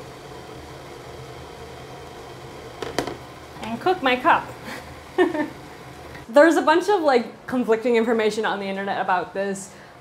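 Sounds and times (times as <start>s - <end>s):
water boiling hiss: 0.0s - 6.6s
low hob hum: 0.0s - 10.0s.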